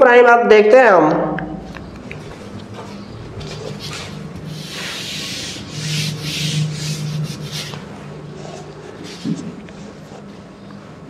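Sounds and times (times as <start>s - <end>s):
eraser wiping whiteboard: 3.4s - 10.0s.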